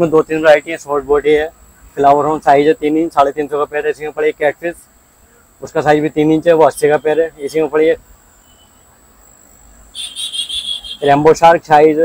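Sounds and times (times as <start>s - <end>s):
high-pitched insect trill: 0.0s - 12.0s.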